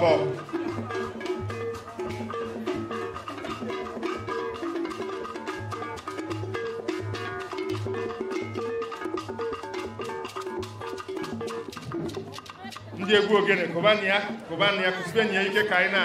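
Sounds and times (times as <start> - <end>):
drums and hand percussion: 0.0 - 16.0.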